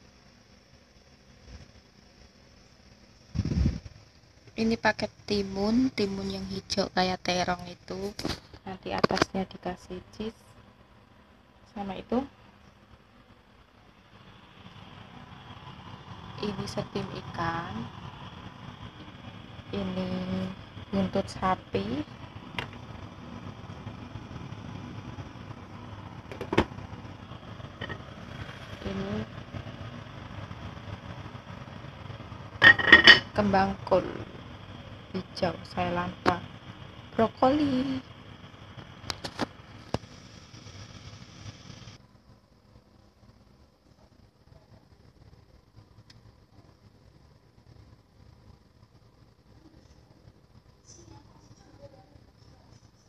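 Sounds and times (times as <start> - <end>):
faint room hum: 0.0 - 53.0
low rumble over stove: 0.0 - 53.0
metal pot lid clinking: 32.6 - 33.3.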